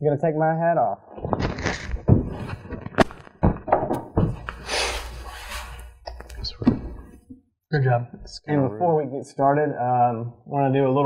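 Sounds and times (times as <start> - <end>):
masks rustling: 1.1 - 7.4
dull thumps and knocks: 1.3 - 4.5.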